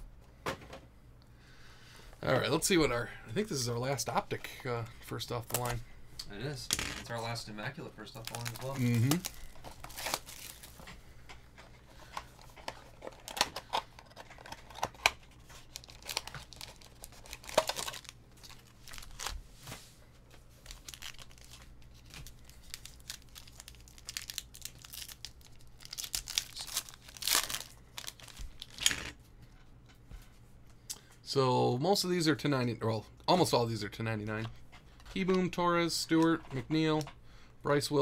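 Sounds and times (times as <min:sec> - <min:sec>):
card pack wrapper tearing: 0:08.1 - 0:10.8, 0:12.8 - 0:19.4, 0:20.6 - 0:29.1.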